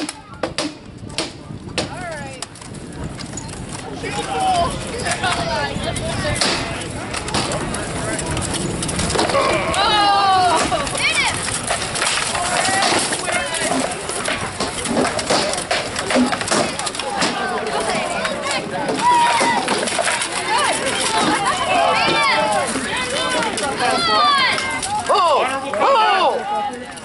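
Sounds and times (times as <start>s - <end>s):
people shouting: 9.2s - 11.4s, 16.8s - 26.8s
weapons knocking on shields: 10.5s - 23.6s.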